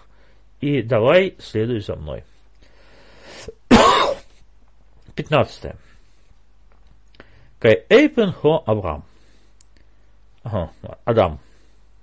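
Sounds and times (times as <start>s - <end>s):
man breathing in: 2.6s - 3.6s
man clearing throat: 3.7s - 4.3s.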